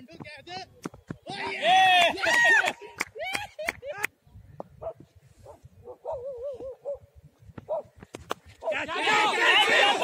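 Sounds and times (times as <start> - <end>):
dog barking: 4.8 - 7.0, 7.7 - 7.9.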